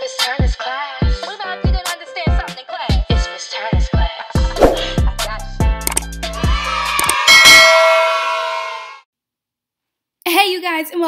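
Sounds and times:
short clicks: 0:05.8 - 0:06.1, 0:07.0 - 0:07.2
bell ding ringing: 0:07.3 - 0:08.3.

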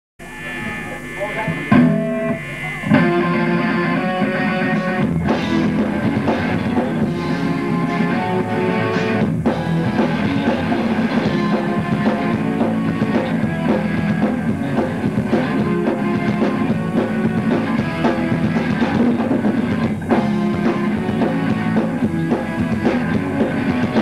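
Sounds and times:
rock band playing: 0:00.2 - 0:24.0.

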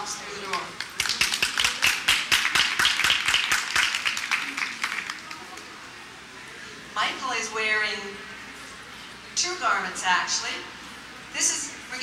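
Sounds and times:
audience clapping: 0:00.5 - 0:05.8.

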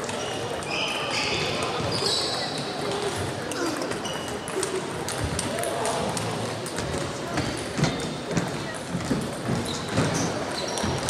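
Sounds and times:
table tennis balls clicking: 0:02.8 - 0:11.0.

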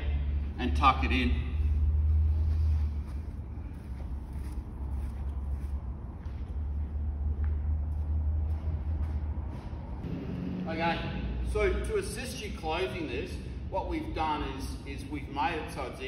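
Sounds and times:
low steady rumble: 0:00.0 - 0:16.0.

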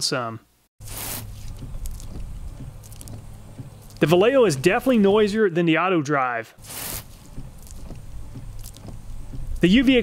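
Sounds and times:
water hissing on windshield: 0:00.8 - 0:02.2, 0:06.6 - 0:10.0
low steady hum: 0:00.9 - 0:05.4, 0:06.6 - 0:10.0.

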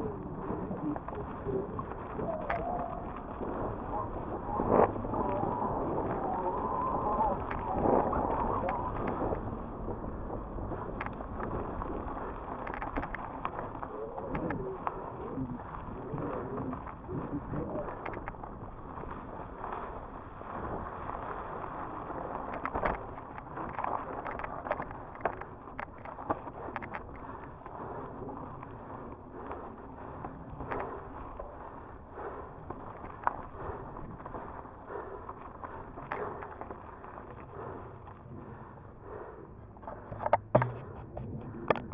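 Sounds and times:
bike rattling over bumps: 0:00.0 - 0:41.9
bike tyres on dirt and rock: 0:00.0 - 0:41.9.

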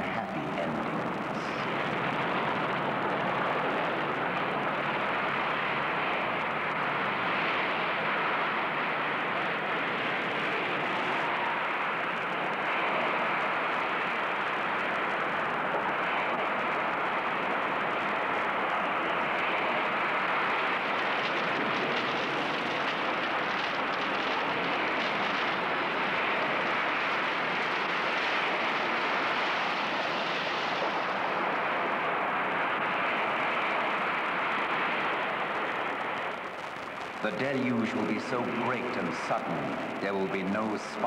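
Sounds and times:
storm wind: 0:00.0 - 0:41.0
surging floodwater: 0:00.0 - 0:41.0.

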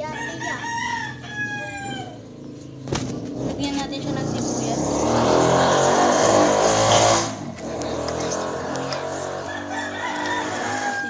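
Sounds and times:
rooster crowing: 0:00.0 - 0:02.3, 0:09.4 - 0:11.0.

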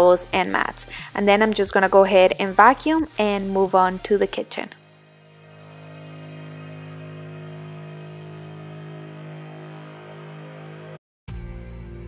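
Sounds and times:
ambient music sustained chord: 0:04.8 - 0:12.0.

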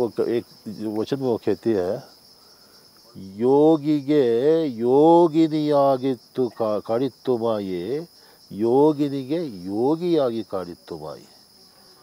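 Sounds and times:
insects chirring: 0:00.0 - 0:12.0
man reciting verse: 0:03.1 - 0:11.3.

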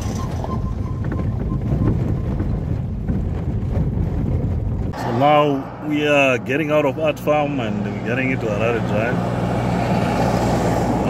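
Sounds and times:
car engine hum: 0:00.0 - 0:11.0
truck driving past: 0:04.9 - 0:11.0.

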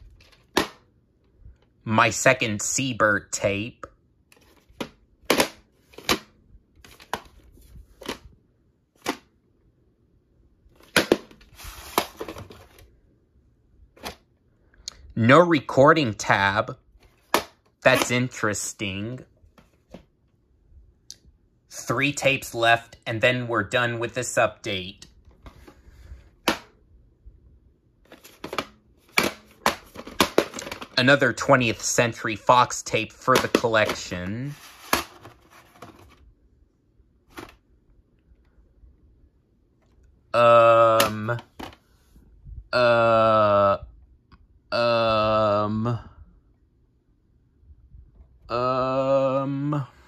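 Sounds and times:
tape case clicking and rustling: 0:04.3 - 0:07.4, 0:28.1 - 0:31.0, 0:34.7 - 0:36.2
cassette sliding out of sleeve: 0:10.8 - 0:12.8, 0:34.5 - 0:36.2.

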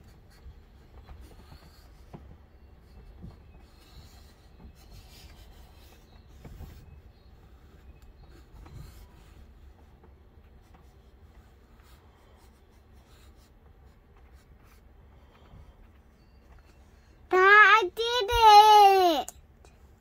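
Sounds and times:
pencil scratching on paper: 0:03.6 - 0:15.3.

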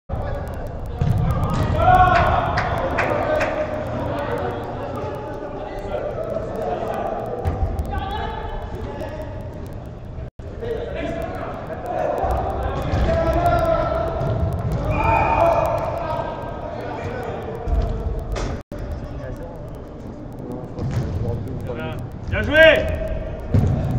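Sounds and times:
players' voices calling: 0:00.1 - 0:09.7
players shouting: 0:01.0 - 0:07.2, 0:10.7 - 0:17.8.

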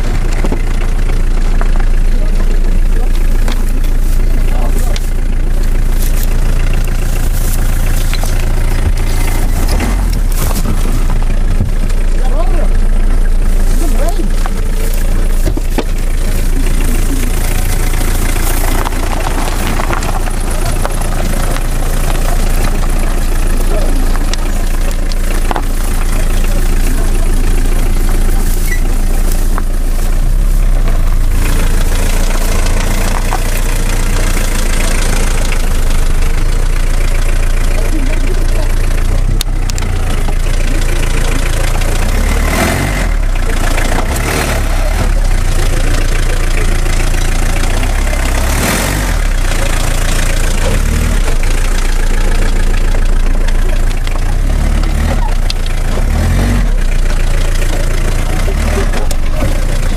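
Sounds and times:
vehicle engine rumbling: 0:00.0 - 0:59.9.

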